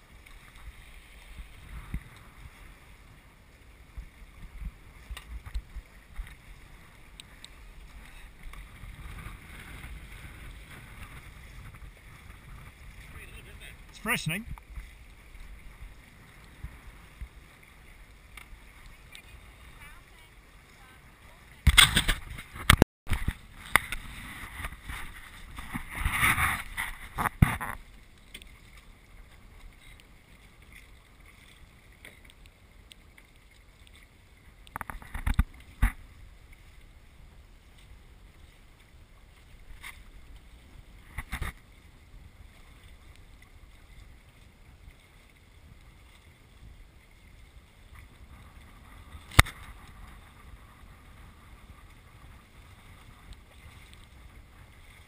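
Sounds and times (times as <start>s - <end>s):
water rushing past hulls: 0.0s - 55.0s
wind on microphone: 1.3s - 3.2s, 3.9s - 17.5s, 21.6s - 27.8s, 45.7s - 55.0s.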